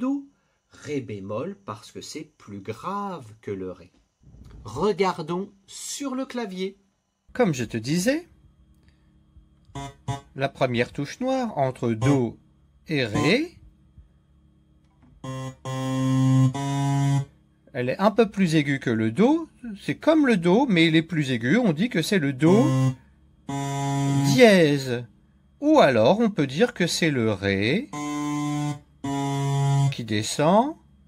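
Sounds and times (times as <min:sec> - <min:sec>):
low electronic keyboard notes: 0:07.3 - 0:25.1, 0:25.7 - 0:30.7.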